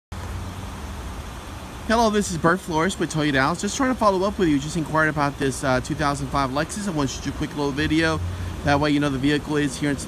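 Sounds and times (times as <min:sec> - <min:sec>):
man's voice: 0:01.9 - 0:10.0.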